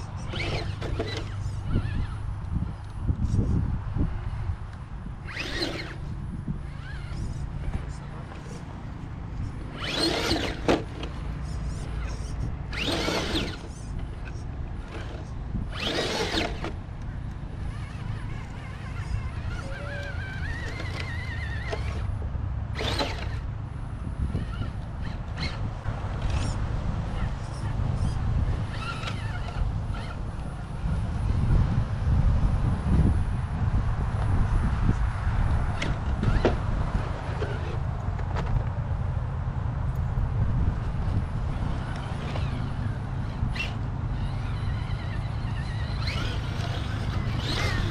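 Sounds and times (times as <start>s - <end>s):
electric motor whining: 0.0s - 3.4s, 5.1s - 32.3s, 35.5s - 37.8s, 40.6s - 47.9s.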